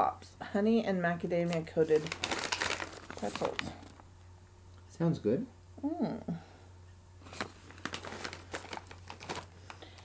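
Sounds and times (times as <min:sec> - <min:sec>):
plastic pouch crinkling: 0:01.5 - 0:04.1, 0:07.3 - 0:10.0.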